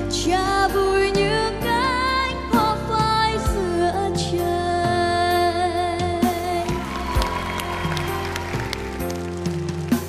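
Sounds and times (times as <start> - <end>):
instrumental backing music with beat: 0.0 - 10.0
audience clapping along: 6.7 - 10.0.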